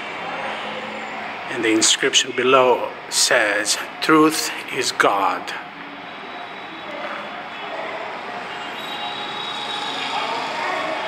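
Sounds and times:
faint high whine: 0:05.0 - 0:11.0.

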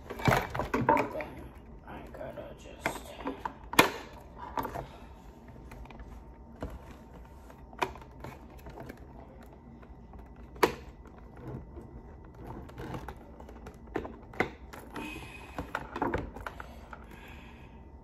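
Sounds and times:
plastic clicking and rattling: 0:05.6 - 0:17.1.

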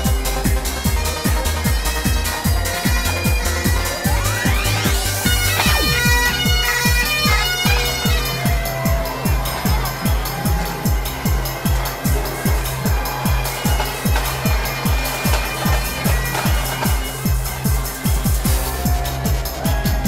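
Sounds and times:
bagpipes playing: 0:00.0 - 0:19.9
electronic dance music: 0:00.0 - 0:20.0.

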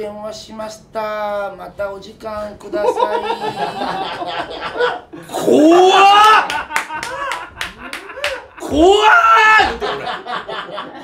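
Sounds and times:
man laughing loudly: 0:02.8 - 0:11.0
hands clapping: 0:06.2 - 0:08.8.

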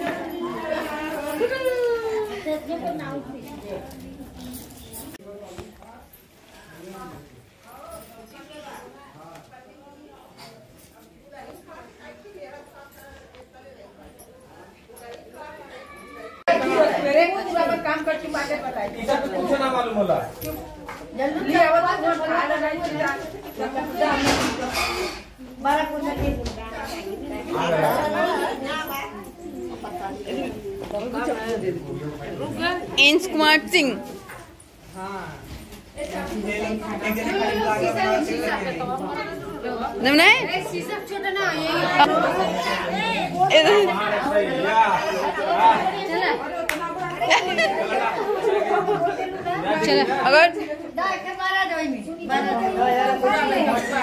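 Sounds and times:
people chattering: 0:00.0 - 0:54.0
people talking at once: 0:00.0 - 0:54.0.

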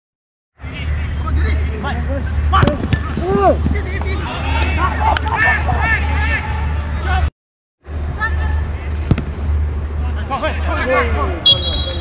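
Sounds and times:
footballers shouting: 0:00.6 - 0:07.3
ball being kicked: 0:02.6 - 0:04.2, 0:09.0 - 0:09.5
steady low hum: 0:07.8 - 0:12.0.

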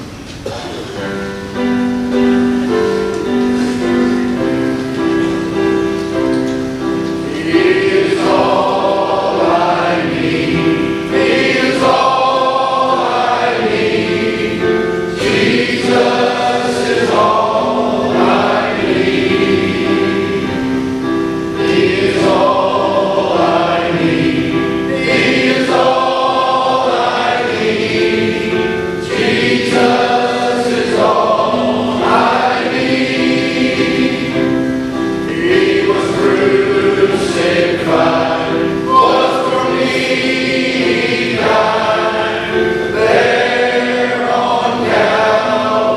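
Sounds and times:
men's choir singing a hymn: 0:00.7 - 0:45.9.

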